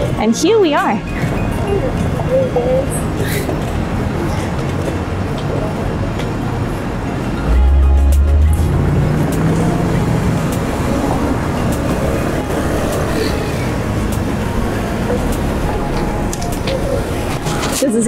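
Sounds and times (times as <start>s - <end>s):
cars driving by: 0.0s - 18.0s
vehicle passing with low rumble: 6.7s - 17.8s.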